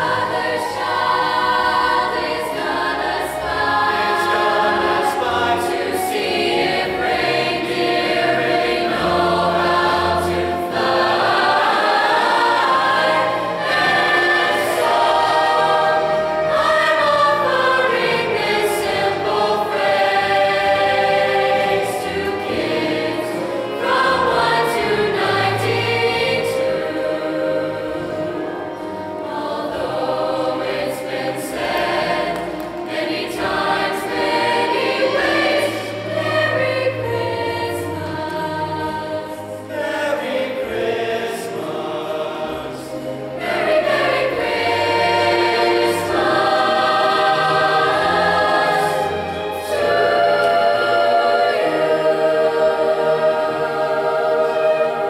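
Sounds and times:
choir singing in parts: 0.0 - 55.0.

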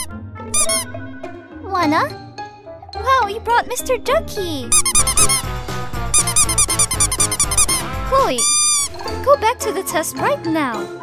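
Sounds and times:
rubber duck squeaks: 0.0 - 1.0, 4.7 - 5.5, 6.1 - 9.1
background music: 0.0 - 11.0.

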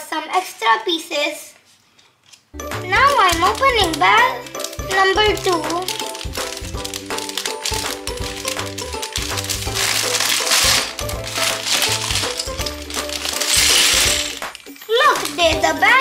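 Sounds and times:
background music: 2.6 - 16.0
plastic bag tearing and crinkling: 2.9 - 16.0
plastic pieces clattering on table: 2.9 - 16.0.

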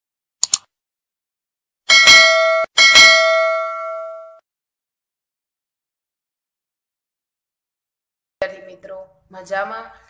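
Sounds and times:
bright notification bell dings: 1.9 - 4.4.

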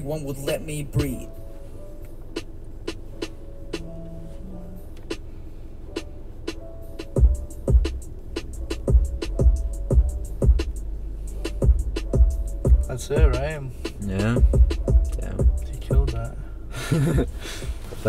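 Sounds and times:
held keyboard notes: 0.0 - 18.0
hi-hat ticks: 0.2 - 1.2, 2.0 - 3.9, 6.0 - 16.4
deep sliding bass hits: 7.1 - 17.8.

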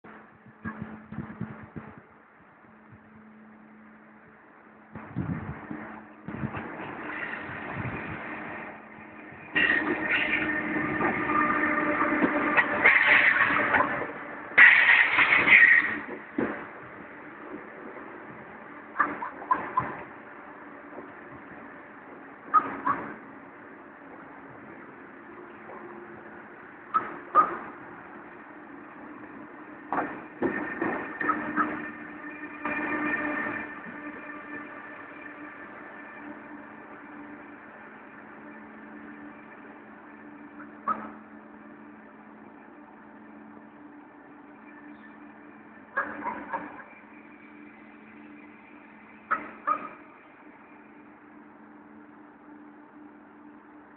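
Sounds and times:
high-speed train running noise: 0.0 - 53.9
steady tones: 0.0 - 53.9.

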